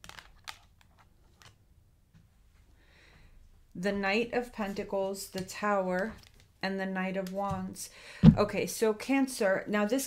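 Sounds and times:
cards snapping and sliding: 0.0 - 0.8.

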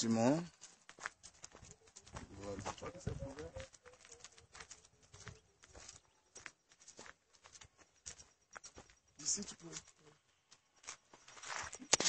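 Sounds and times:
faint indistinct talking: 1.8 - 5.5.

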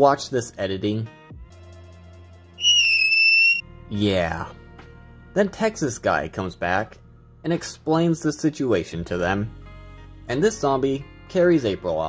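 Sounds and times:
loud high whistling tone: 2.6 - 3.6.

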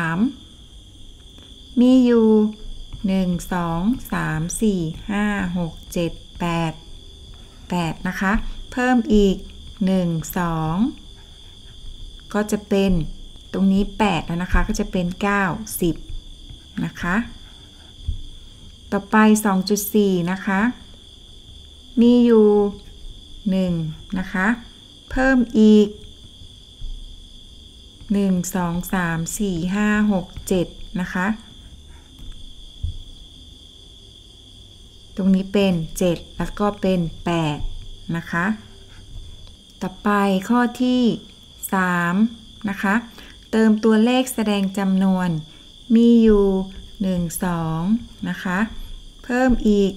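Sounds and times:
woman counting aloud: 1.8 - 6.8, 16.8 - 17.3, 22.0 - 22.8, 23.5 - 26.0, 28.1 - 31.4, 35.2 - 38.6, 39.8 - 49.9
soft low thump: 12.8 - 15.2, 15.8 - 18.8, 32.2 - 33.2, 35.6 - 39.5.

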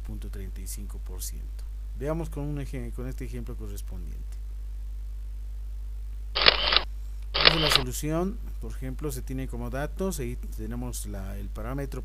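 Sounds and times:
low electrical hum: 0.0 - 12.0
camera shutter sound effect: 6.4 - 6.8, 7.4 - 7.8.

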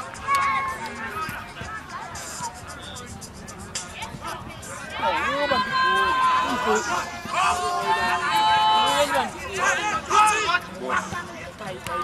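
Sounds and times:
high-pitched shout: 5.0 - 9.1.

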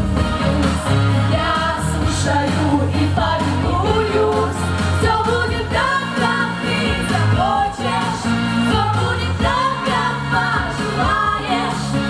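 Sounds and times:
female group singing pop song: 0.0 - 12.0.

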